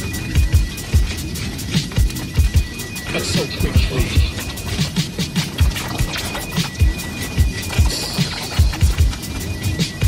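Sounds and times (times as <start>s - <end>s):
fast hi-hats: 0.0s - 10.0s.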